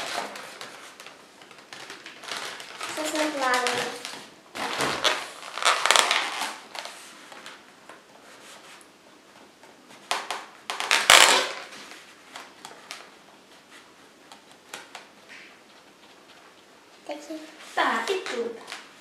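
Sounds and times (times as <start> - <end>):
balloons rubbing and crackling: 0.0 - 19.0.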